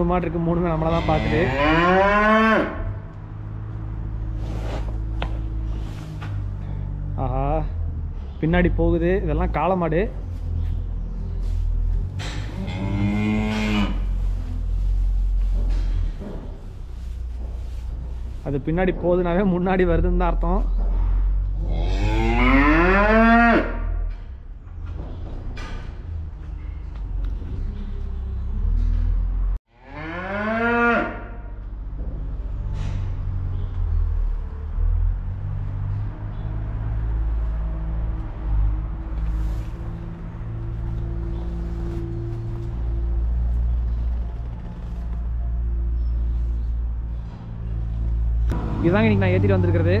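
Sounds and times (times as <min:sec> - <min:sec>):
cattle mooing: 0:00.8 - 0:03.0, 0:12.5 - 0:14.2, 0:21.6 - 0:23.9, 0:29.8 - 0:31.4.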